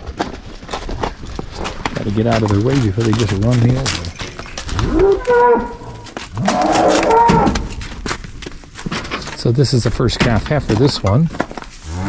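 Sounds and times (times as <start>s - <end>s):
cow hooves on packed snow: 0.0s - 12.0s.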